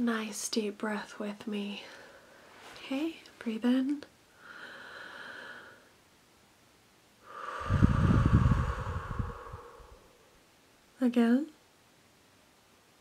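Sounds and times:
woman breathing deeply: 0:04.3 - 0:06.0, 0:07.2 - 0:10.4.

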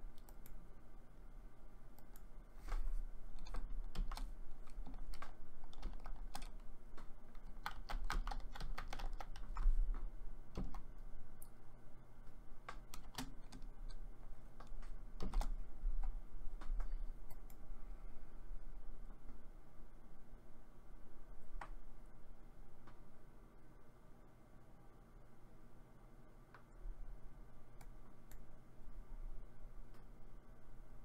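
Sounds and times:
low steady hum: 0:00.0 - 0:31.0
computer keyboard typing: 0:00.1 - 0:00.6, 0:02.0 - 0:11.5, 0:12.6 - 0:17.6.

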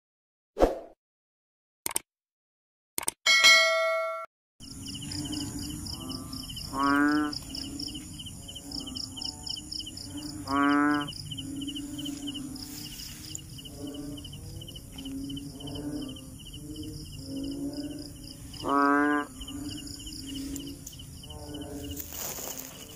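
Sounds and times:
bright bell-like ding: 0:03.3 - 0:04.3
frogs calling: 0:04.6 - 0:22.9
pulsing insect trills: 0:04.6 - 0:22.9.

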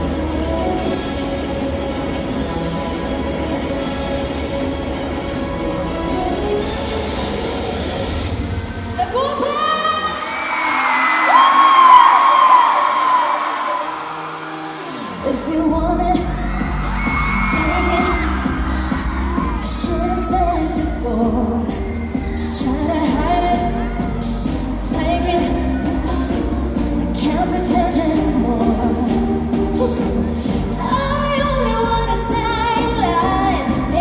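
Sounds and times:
woman singing: 0:15.2 - 0:34.0
bass and dance beat: 0:15.5 - 0:34.0.

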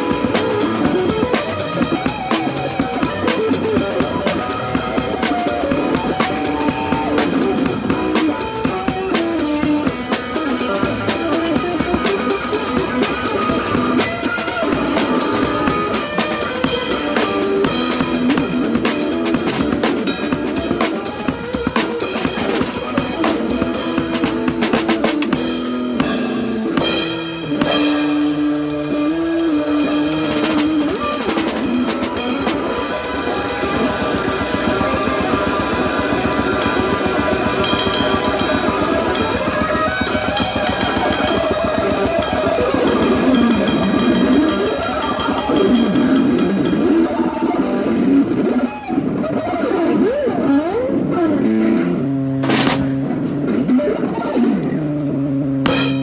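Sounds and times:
electric guitar blues-rock: 0:00.0 - 0:56.0.

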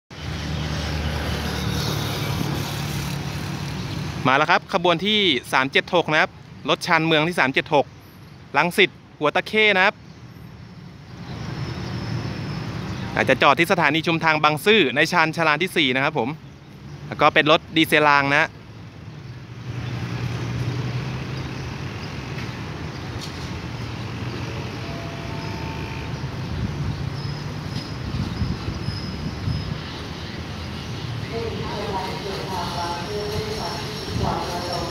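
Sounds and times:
distant diesel railcar engine: 0:18.8 - 0:34.9.

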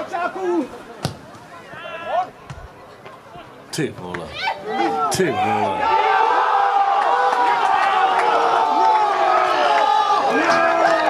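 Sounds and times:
players shouting: 0:00.0 - 0:02.4, 0:04.0 - 0:11.0.

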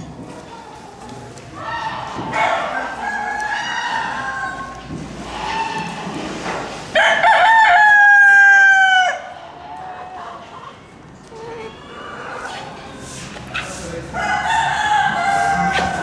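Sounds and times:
rooster crowing: 0:07.0 - 0:09.3, 0:14.2 - 0:16.0.

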